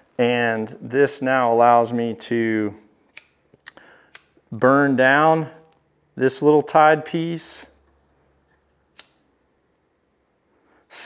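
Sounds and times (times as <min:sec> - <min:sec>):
lighter click: 0:09.0 - 0:09.2.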